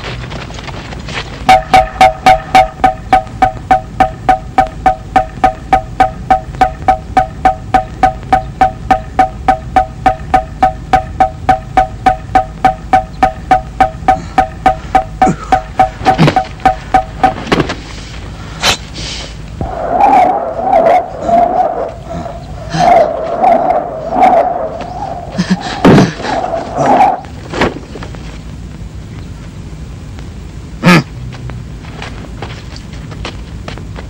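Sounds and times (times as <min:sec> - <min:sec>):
slit drum beaten rapidly: 0:01.5 - 0:17.5.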